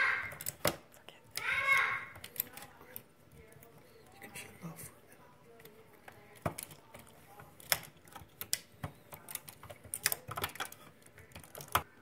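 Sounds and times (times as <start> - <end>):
plastic parts handled: 5.6 - 11.9.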